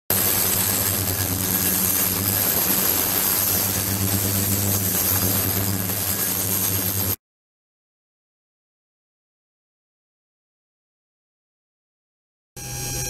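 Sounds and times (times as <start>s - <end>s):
electrical hum with high whine: 0.1s - 7.2s.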